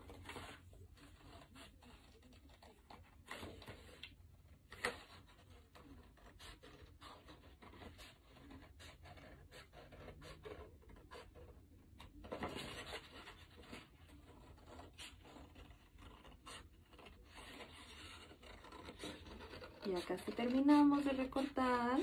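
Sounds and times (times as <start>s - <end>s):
paper rustling: 0.0s - 22.0s
scissors snipping paper: 0.0s - 22.0s.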